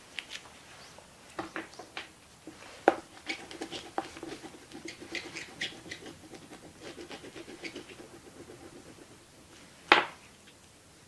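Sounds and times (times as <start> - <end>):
oil pastel scraping paper: 2.6 - 9.7.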